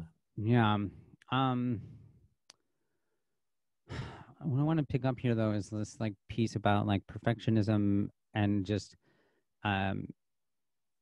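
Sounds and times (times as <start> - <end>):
man breathing: 3.9 - 4.4, 9.0 - 9.5.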